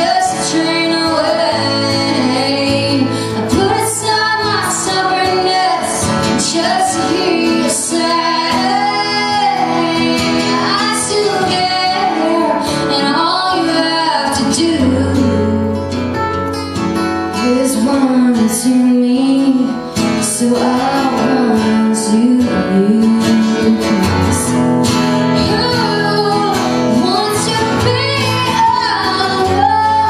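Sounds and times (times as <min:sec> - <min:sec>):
woman singing: 0:00.0 - 0:15.9, 0:17.3 - 0:24.6, 0:25.3 - 0:30.0
acoustic guitars playing: 0:00.0 - 0:30.0.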